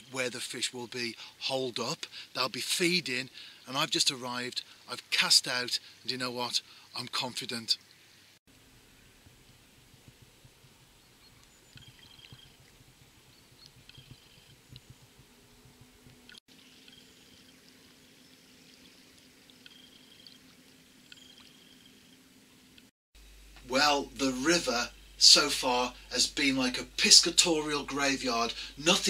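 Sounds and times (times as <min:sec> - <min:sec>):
low steady hum: 0:08.5 - 0:29.0
faint high chirps: 0:13.3 - 0:22.2.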